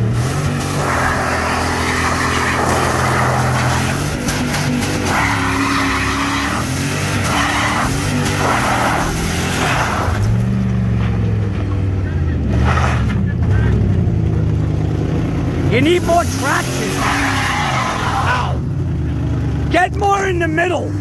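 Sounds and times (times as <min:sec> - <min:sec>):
tyres screeching: 0:00.0 - 0:10.6, 0:15.7 - 0:18.7
pickup engine revving: 0:00.0 - 0:21.0.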